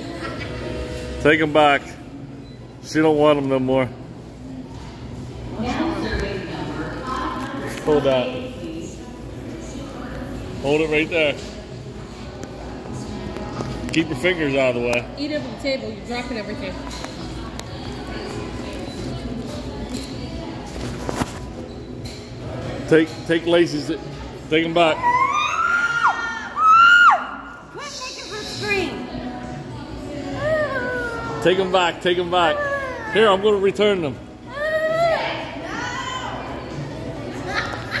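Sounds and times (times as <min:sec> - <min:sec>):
murmur of voices: 0:00.0 - 0:38.0.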